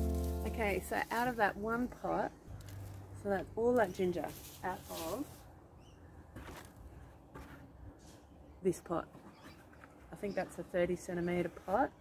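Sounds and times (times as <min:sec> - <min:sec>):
plastic pot scuffs and rustles: 0:00.0 - 0:01.8, 0:03.7 - 0:05.6.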